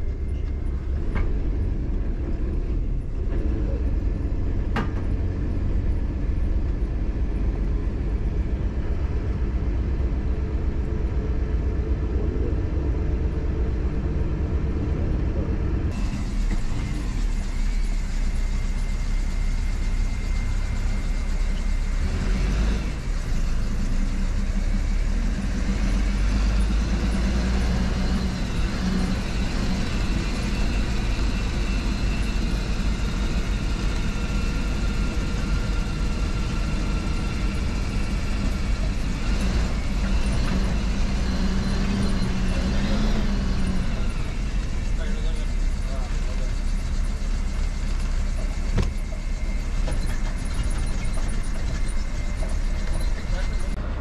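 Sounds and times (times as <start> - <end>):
bus engine drone: 0.0 - 54.0
road noise: 0.0 - 54.0.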